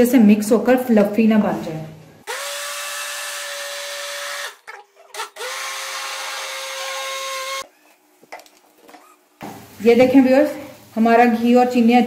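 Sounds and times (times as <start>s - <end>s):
blender motor running: 2.3s - 7.6s.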